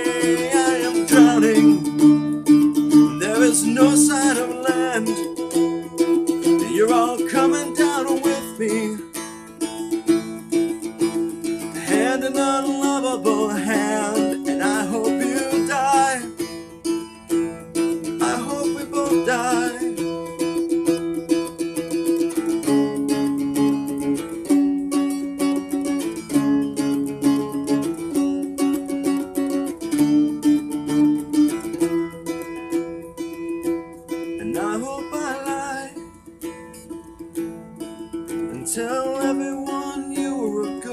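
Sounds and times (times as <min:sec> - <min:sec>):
slide acoustic guitar: 0:00.0 - 0:40.9.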